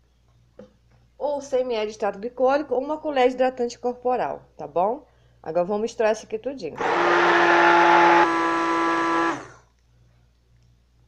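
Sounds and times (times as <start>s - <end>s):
immersion blender whirring: 6.8s - 9.6s.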